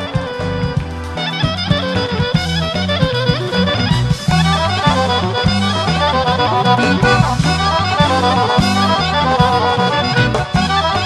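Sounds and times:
folk band playing lively tune: 0.0s - 11.0s.

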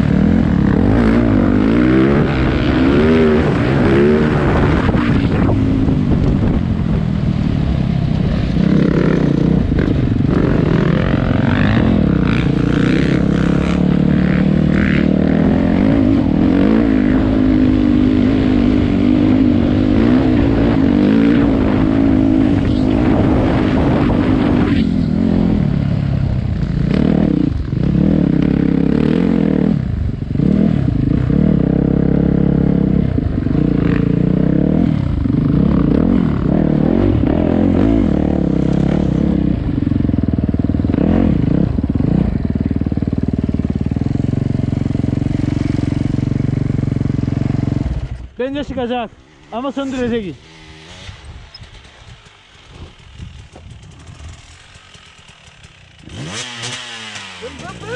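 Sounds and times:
dirt bike engine revving: 0.0s - 7.0s, 7.7s - 57.9s.

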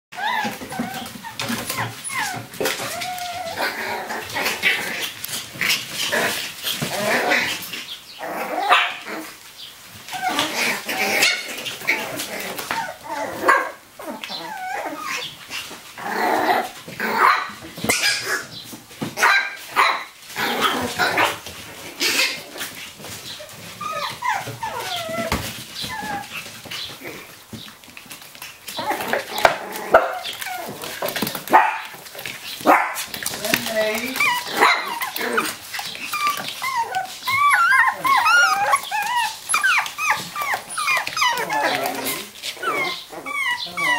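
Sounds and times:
puppies yipping and barking: 0.1s - 43.9s.

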